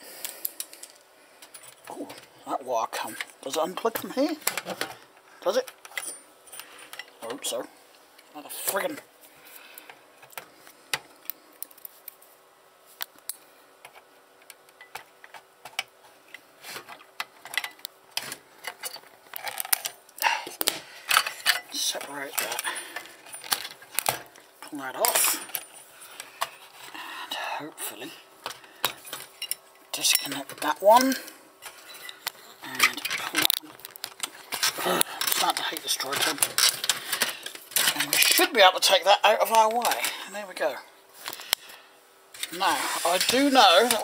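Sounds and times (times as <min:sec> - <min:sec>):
tools clinking on metal parts: 0:05.8 - 0:07.4, 0:28.8 - 0:33.6.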